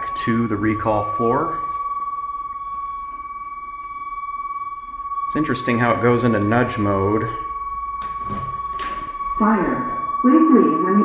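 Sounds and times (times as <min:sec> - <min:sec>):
elevator buzzer steady high tone: 0:00.0 - 0:11.0.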